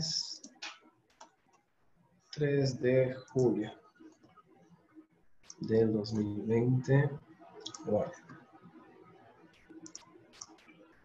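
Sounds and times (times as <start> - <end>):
faint computer clicks: 7.6 - 8.4, 9.6 - 10.8.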